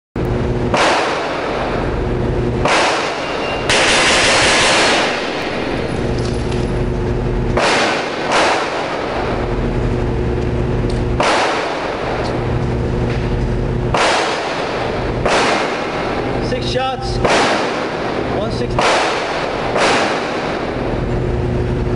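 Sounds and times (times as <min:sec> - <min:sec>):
steady low hum: 0:00.2 - 0:21.9
pistol gunfire echoing indoors: 0:00.6 - 0:09.8, 0:11.1 - 0:12.6, 0:13.8 - 0:16.5, 0:17.2 - 0:21.1.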